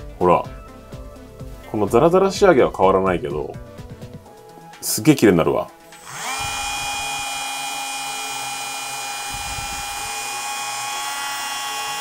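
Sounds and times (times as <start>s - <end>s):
rotary tool whining: 5.9s - 12.0s.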